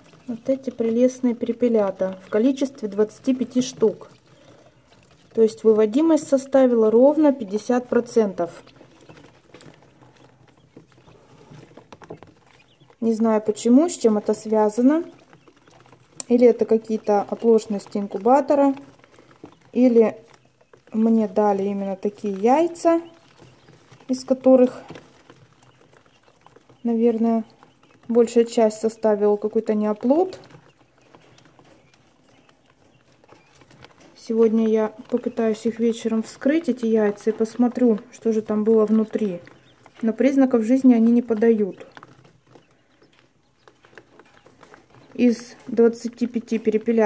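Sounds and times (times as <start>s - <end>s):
chicks pecking and scratching: 0.0s - 47.0s.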